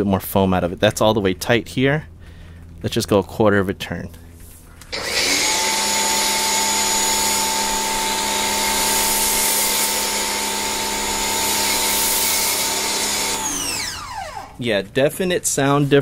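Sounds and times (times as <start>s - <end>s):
pressure washer motor whine: 4.9s - 14.6s
water spray hissing: 6.8s - 13.8s.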